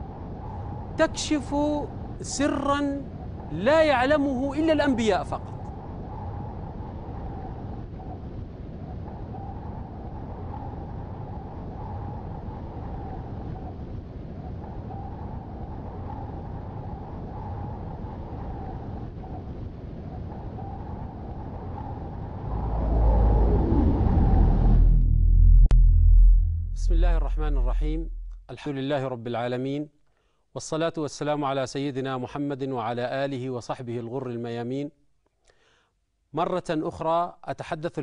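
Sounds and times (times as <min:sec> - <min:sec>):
low rumbling drone: 0:20.3 - 0:28.6
deep bass falling sweep: 0:22.1 - 0:28.5.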